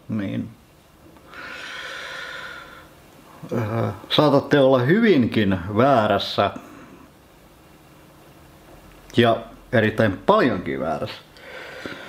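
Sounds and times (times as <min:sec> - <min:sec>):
man breathing through nose: 0:01.3 - 0:03.0, 0:11.4 - 0:12.0.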